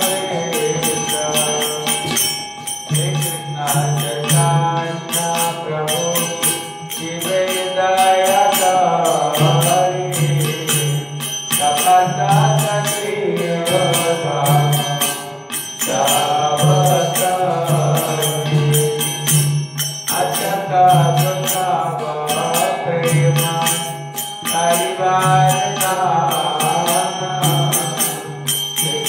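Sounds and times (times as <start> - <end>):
devotional chanting: 0.0 - 29.0
hand cymbals struck: 0.0 - 29.0.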